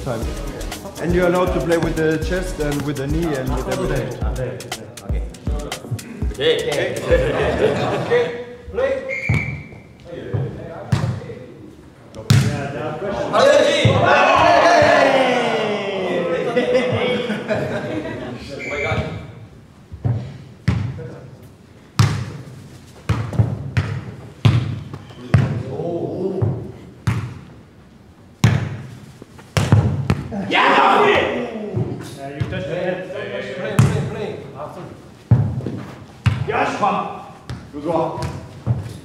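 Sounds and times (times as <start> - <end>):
football thuds in echoing hall: 9.1 - 11.5, 12.2 - 15.4, 19.9 - 21.3, 22.0 - 27.6, 28.4 - 30.5, 31.1 - 32.8, 33.7 - 34.2, 35.2 - 36.8, 37.4 - 39.0
excited voices shouting: 13.5 - 16.5, 30.4 - 31.6.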